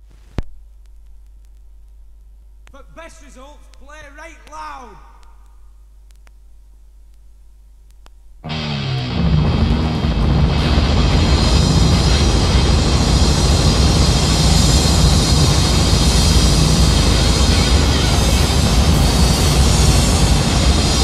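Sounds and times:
hardcore punk music: 0:08.4 - 0:21.0.

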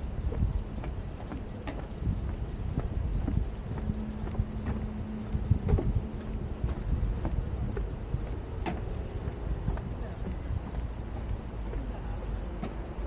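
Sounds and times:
footsteps on wooden boardwalk: 0:00.0 - 0:13.0
high insect chirping: 0:00.0 - 0:13.0
steady low rumble: 0:00.0 - 0:13.0.

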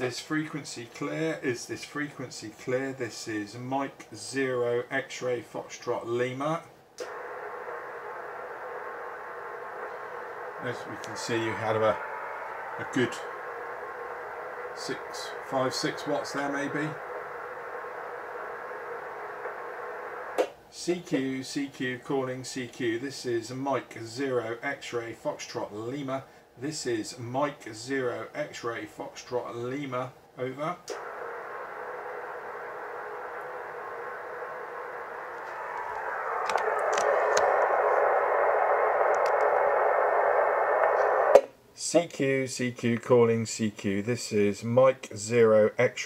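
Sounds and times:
muffled radio band noise hiss: 0:00.0 - 0:46.0
faint clicks: 0:07.0 - 0:11.2, 0:30.8 - 0:41.5
faint steady whistle: 0:07.0 - 0:20.4, 0:31.0 - 0:41.4.

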